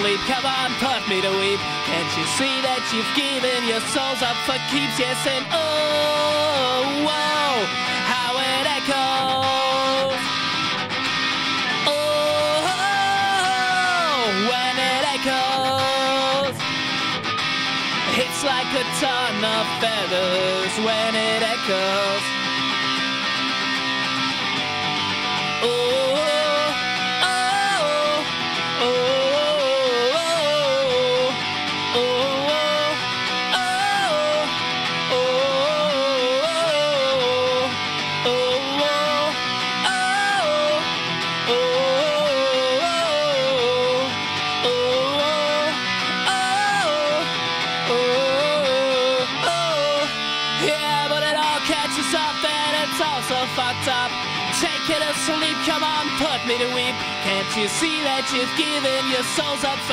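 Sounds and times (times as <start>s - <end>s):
instrumental ska-punk music: 0.0s - 59.9s.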